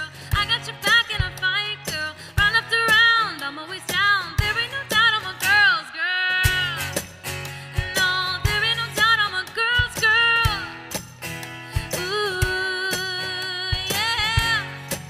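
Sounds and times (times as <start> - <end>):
woman singing: 0.0 - 11.0, 11.6 - 15.0
strummed acoustic guitar: 0.0 - 15.0.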